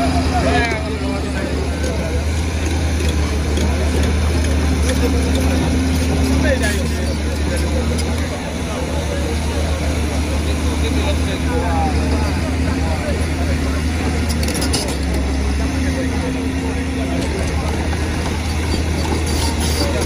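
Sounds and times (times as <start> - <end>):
crowd chatter: 0.0 - 20.0
excavator diesel engine running: 0.0 - 20.0.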